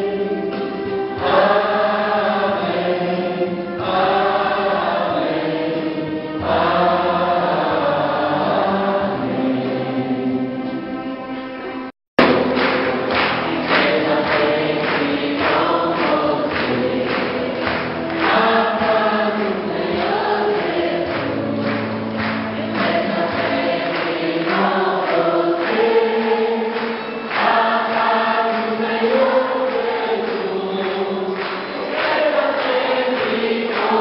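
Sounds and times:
group singing a hymn: 0:00.0 - 0:10.8, 0:12.2 - 0:34.0.

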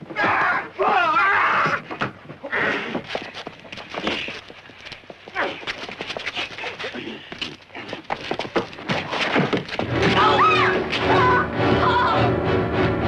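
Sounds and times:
scuffling footfalls: 0:00.0 - 0:11.4.

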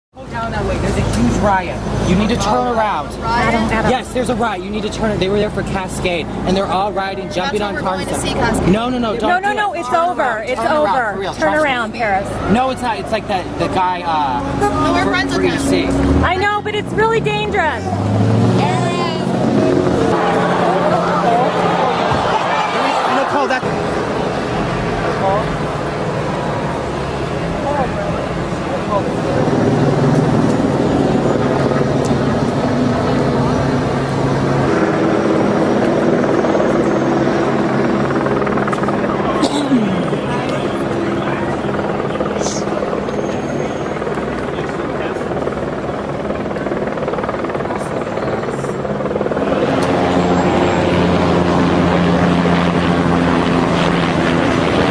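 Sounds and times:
helicopter hovering: 0:00.2 - 0:54.9
indistinct voices: 0:14.3 - 0:34.7, 0:38.4 - 0:45.3.

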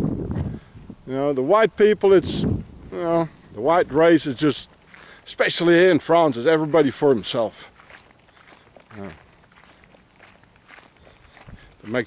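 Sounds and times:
footsteps on grass: 0:02.6 - 0:12.0.

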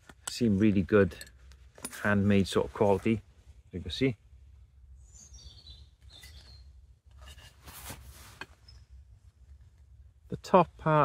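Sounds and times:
small bird calling: 0:04.9 - 0:06.8
soft rustle: 0:07.1 - 0:10.1.

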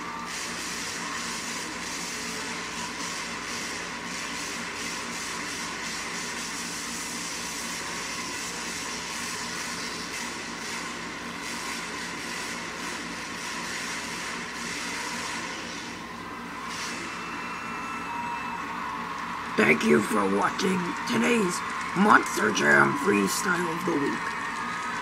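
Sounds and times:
arena noise: 0:16.0 - 0:25.0.

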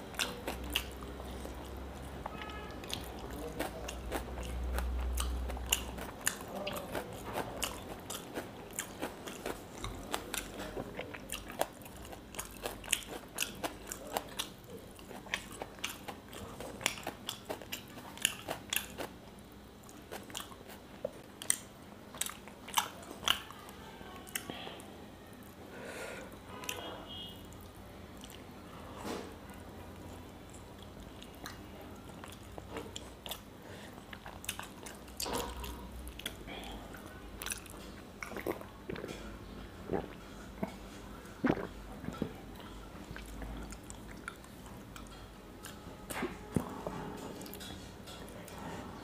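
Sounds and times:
chewing fried fish: 0:00.0 - 0:25.4, 0:26.3 - 0:49.0
mouth clicks and smacks: 0:41.4 - 0:42.3.

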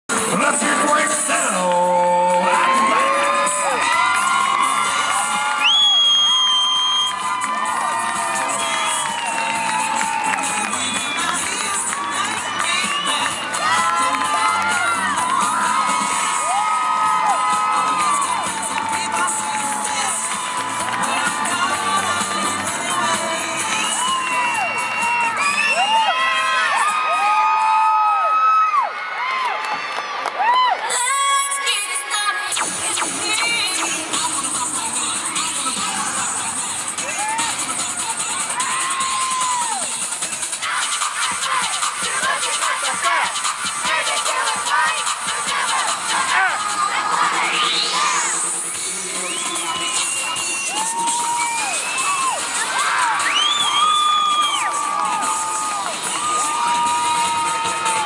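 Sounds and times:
crowd cheering and screaming: 0:00.1 - 0:58.0.

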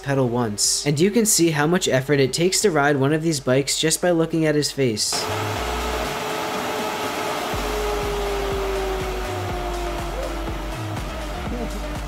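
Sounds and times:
whirring machine rush: 0:05.2 - 0:12.0
music with deep bass line: 0:07.6 - 0:12.0.

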